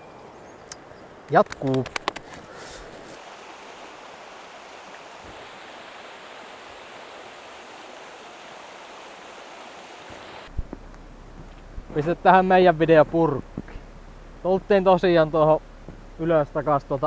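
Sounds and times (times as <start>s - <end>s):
river rapids rushing: 2.7s - 10.5s.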